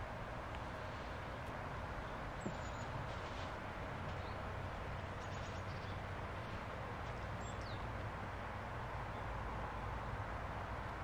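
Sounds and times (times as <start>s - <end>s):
steady hiss and low rumble: 0.0s - 11.0s.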